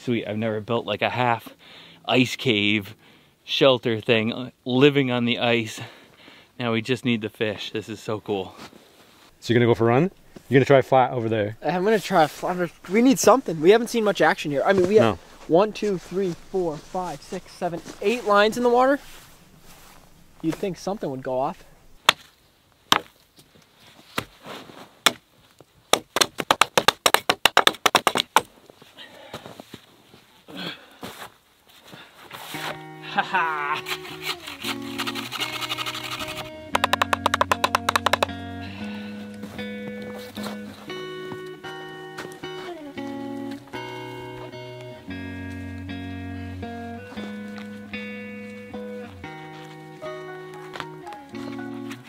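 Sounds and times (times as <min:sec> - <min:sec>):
hatchet striking wooden poles: 0:22.0 - 0:22.3, 0:22.9 - 0:23.1, 0:25.0 - 0:25.2, 0:25.9 - 0:28.5, 0:34.2 - 0:38.5
background music sustained notes: 0:32.6 - 0:52.0.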